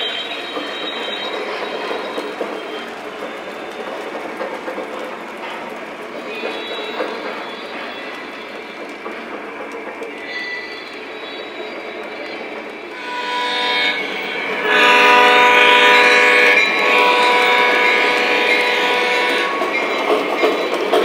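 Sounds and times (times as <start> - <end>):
train wheels clattering on track: 0.0 - 21.0
model train horn blasts: 12.9 - 19.7.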